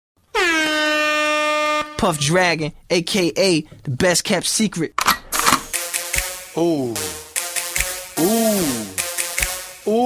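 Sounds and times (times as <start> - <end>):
air horn blast: 0.3 - 2.2.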